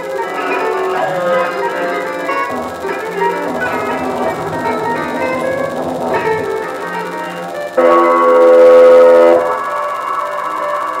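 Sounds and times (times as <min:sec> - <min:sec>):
loud held multi-pitch tone: 0:00.0 - 0:11.0
improvised ensemble music: 0:02.3 - 0:07.8.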